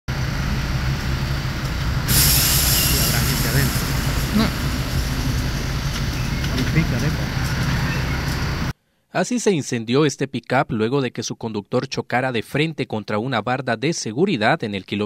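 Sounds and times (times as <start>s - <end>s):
fire burning and crackling: 0.1s - 8.7s
loud hiss: 0.2s - 8.7s.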